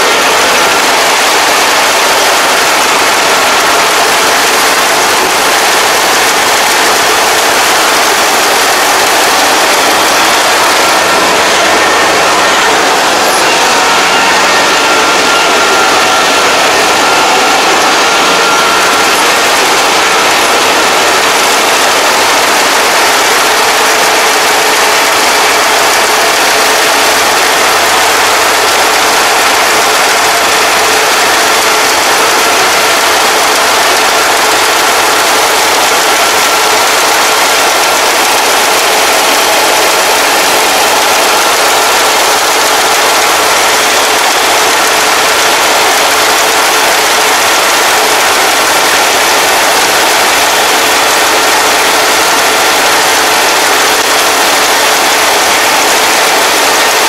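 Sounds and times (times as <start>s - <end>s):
faint steady whine: 0.0s - 49.2s
combine harvester engine drone: 0.0s - 57.0s.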